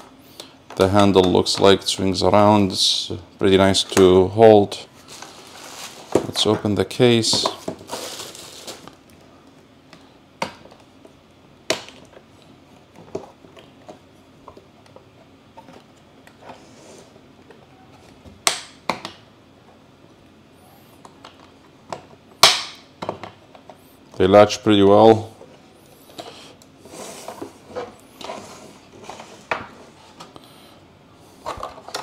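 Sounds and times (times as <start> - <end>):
bubble wrap crinkling: 5.0 - 6.2, 7.7 - 9.1.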